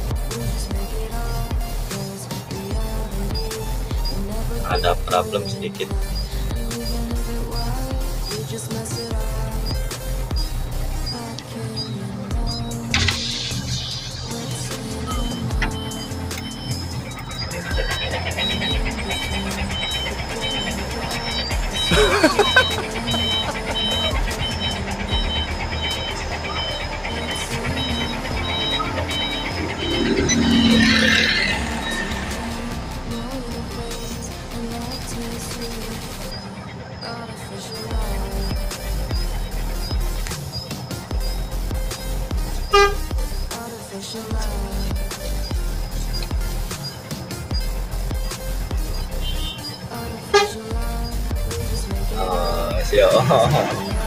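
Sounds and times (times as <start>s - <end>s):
background music: 0.0s - 54.0s
vehicle engine hum: 0.0s - 54.0s
repeating electronic beep: 9.7s - 43.5s, 44.7s - 54.0s
person laughing: 21.7s - 25.2s.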